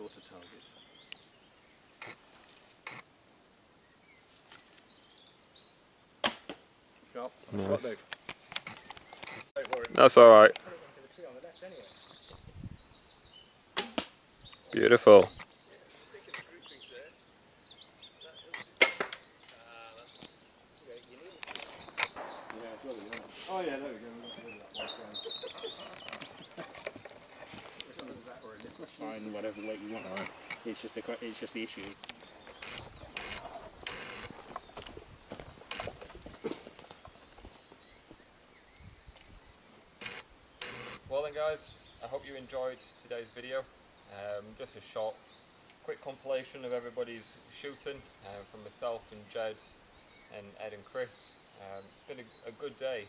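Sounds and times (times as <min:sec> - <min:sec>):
small birds chirping: 0:00.0 - 0:53.0
bowstring snap: 0:13.8 - 0:14.2
people's voices: 0:18.2 - 0:34.2.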